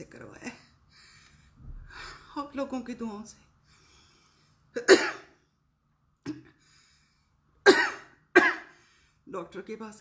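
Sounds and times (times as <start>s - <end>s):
woman coughing: 4.8s - 5.4s, 7.6s - 8.7s.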